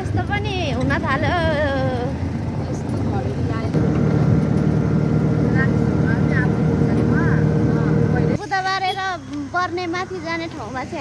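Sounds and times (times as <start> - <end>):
vehicle engine drone: 3.4 - 8.4.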